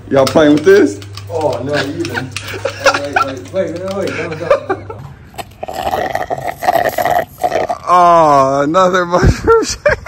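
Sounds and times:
slurping through a straw: 5.3 - 8.0.

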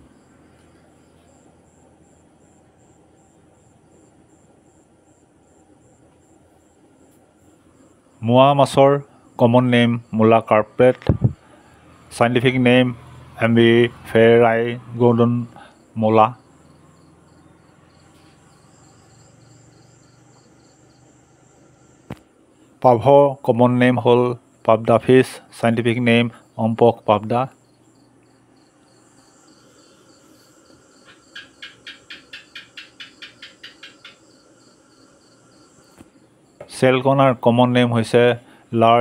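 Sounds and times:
faint cricket chirping: 0.0 - 39.0
low steady hum: 0.0 - 39.0.

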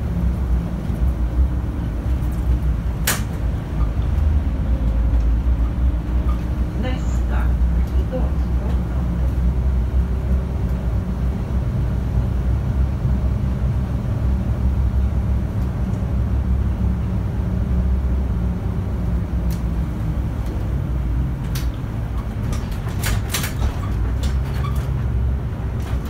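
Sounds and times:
bus engine hum: 0.0 - 26.0
road noise: 0.0 - 26.0.

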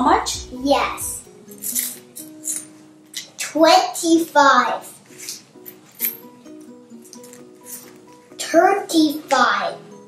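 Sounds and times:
soft background music: 0.0 - 10.0
coins scraping and clinking: 1.5 - 3.3, 5.1 - 6.4, 7.0 - 8.2.

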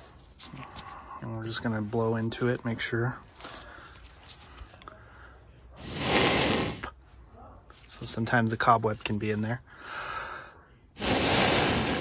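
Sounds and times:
breath blown through hose: 5.8 - 6.9, 11.0 - 12.0.

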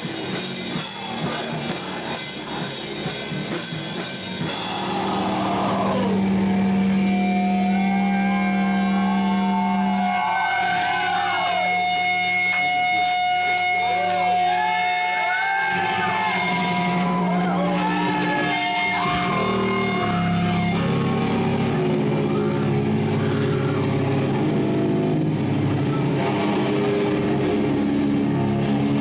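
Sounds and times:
electric guitars with feedback tones: 0.0 - 29.0.

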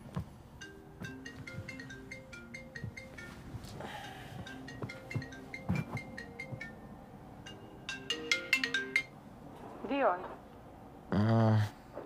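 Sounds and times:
phone ringtone chiming: 0.6 - 9.2.

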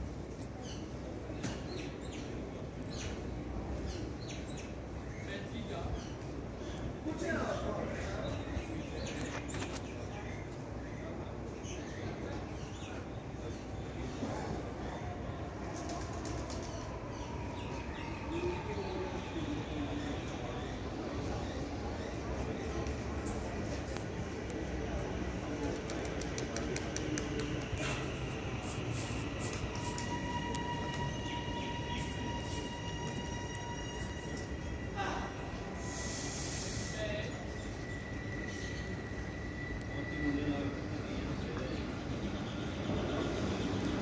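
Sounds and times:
electric train rumble: 14.2 - 44.0.

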